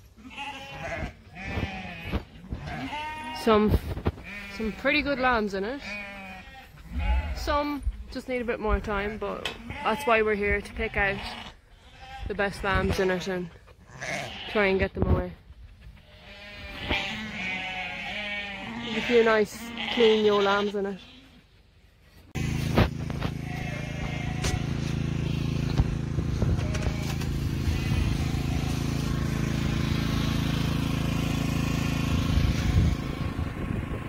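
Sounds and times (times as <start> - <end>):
sheep bleating: 0.2 - 7.8, 9.6 - 12.9, 13.9 - 14.7, 16.0 - 21.4, 22.4 - 25.7, 26.5 - 29.0.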